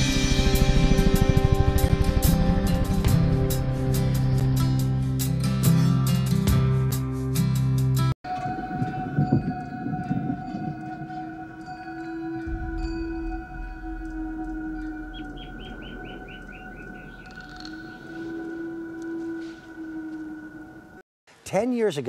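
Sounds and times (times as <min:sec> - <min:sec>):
droning music tones: 0:00.0 - 0:05.9, 0:08.2 - 0:21.0.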